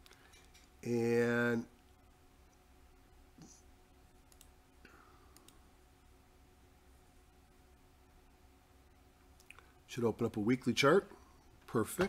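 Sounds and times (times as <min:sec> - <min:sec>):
faint room hum: 0:00.0 - 0:12.0
computer mouse clicks: 0:04.3 - 0:04.5, 0:05.3 - 0:05.6.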